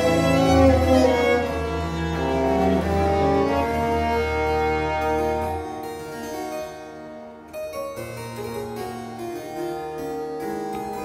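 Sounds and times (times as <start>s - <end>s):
harpsichord: 0.0s - 11.0s
string ensemble sustained notes: 0.0s - 11.0s.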